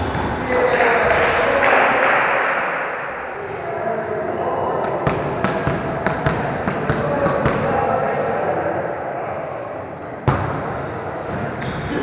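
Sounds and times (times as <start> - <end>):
players talking in echoing gym: 0.0 - 12.0.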